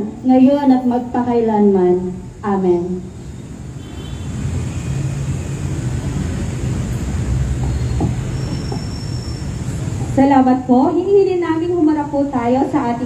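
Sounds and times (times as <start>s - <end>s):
vehicle engine rumbling: 3.1s - 10.2s.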